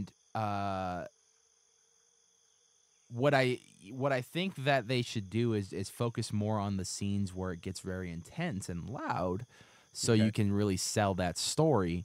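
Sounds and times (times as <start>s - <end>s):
faint high-pitched electronic hum: 0.0s - 12.0s.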